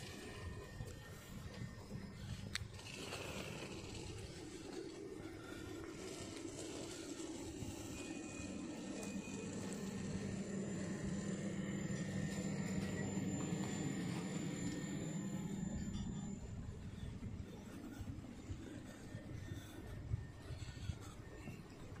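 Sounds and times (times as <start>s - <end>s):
steady hum: 0.0s - 22.0s
thin high whine: 0.0s - 22.0s.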